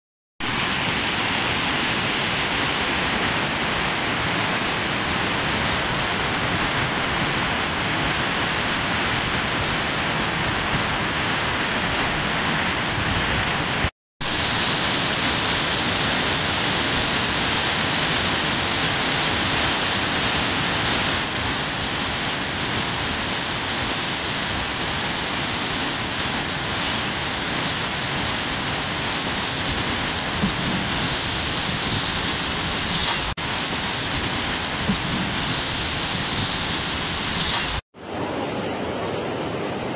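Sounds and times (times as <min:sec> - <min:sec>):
rushing mountain stream: 0:00.4 - 0:39.9.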